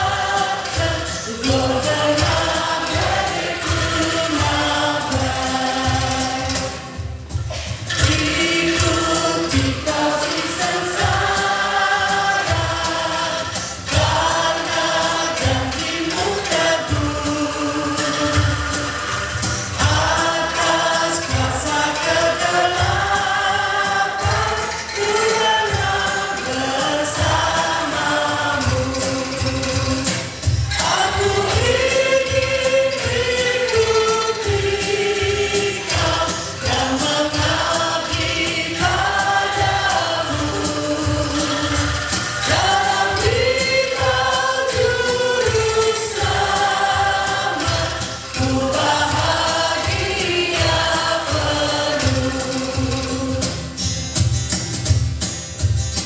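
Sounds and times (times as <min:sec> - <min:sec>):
women singing a hymn: 0:00.0 - 0:30.1, 0:30.7 - 0:53.8
bamboo instrument ensemble: 0:00.0 - 0:56.0.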